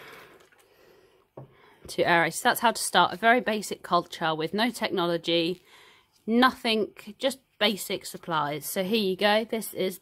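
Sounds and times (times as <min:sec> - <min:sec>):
water sloshing in plastic flask: 0:00.0 - 0:01.5.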